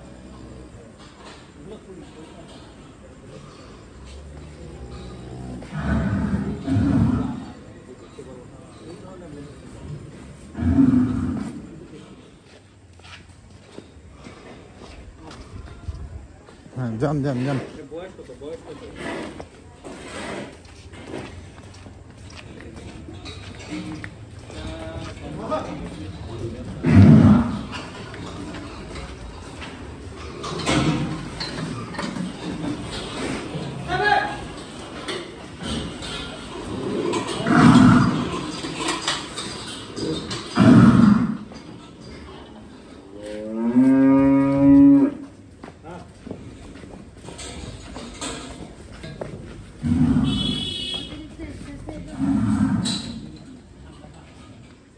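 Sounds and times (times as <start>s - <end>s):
indistinct voices: 0.0s - 12.8s, 13.5s - 54.9s
cow mooing: 4.9s - 7.6s, 10.6s - 11.6s, 37.4s - 38.3s, 40.6s - 41.5s, 43.4s - 45.2s, 49.8s - 50.9s.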